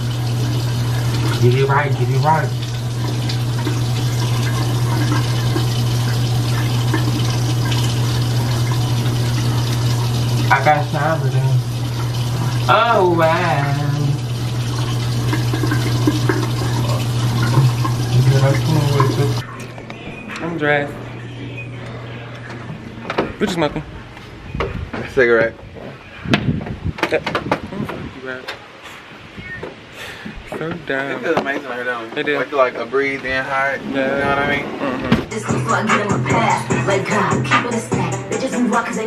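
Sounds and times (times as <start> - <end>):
tap running into sink: 0.9 - 12.6, 13.5 - 19.4.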